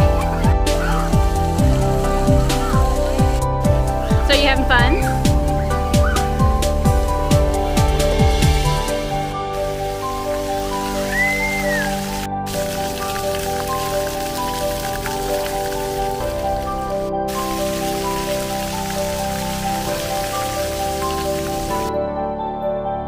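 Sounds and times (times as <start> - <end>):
fountain jets spraying water: 0.0 - 3.5, 6.1 - 21.9
background music: 0.0 - 23.0.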